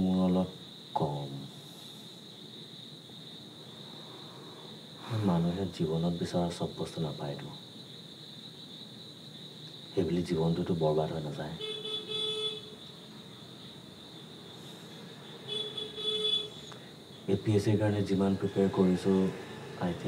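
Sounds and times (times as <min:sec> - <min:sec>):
crickets chirring: 0:00.0 - 0:20.0
vehicle horn tooting: 0:11.6 - 0:12.8, 0:15.5 - 0:16.6.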